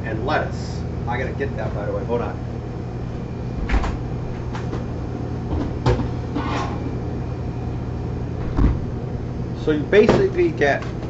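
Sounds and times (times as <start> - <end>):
exhaust hood hum: 0.0 - 11.0.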